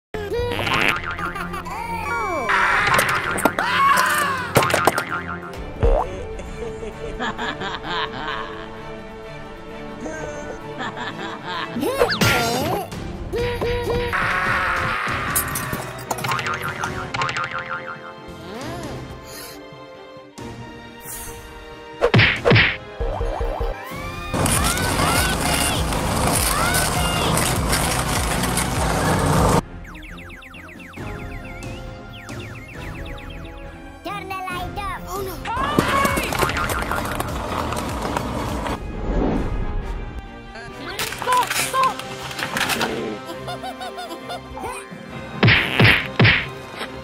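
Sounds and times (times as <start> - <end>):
background music: 0.2 - 47.0
cartoon springy boings: 2.5 - 6.0, 16.2 - 18.2, 22.2 - 23.8.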